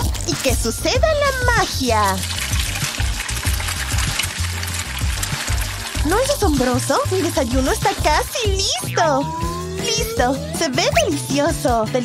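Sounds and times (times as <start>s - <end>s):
egg sizzling and bubbling: 0.0s - 10.2s
background music with bassline: 0.0s - 12.0s.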